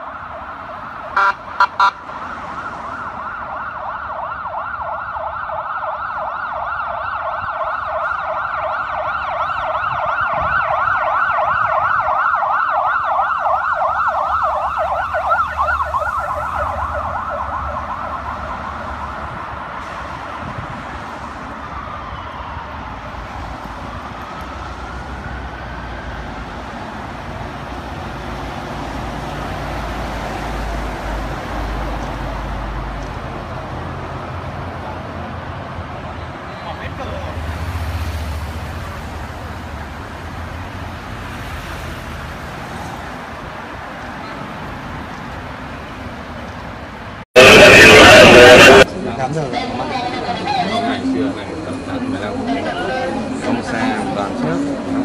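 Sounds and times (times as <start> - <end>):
siren yelping: 0.0 - 19.7, 47.4 - 48.9
siren sweeping up and down: 0.0 - 20.7, 47.4 - 48.9
rumble of passing vehicles: 0.0 - 55.0.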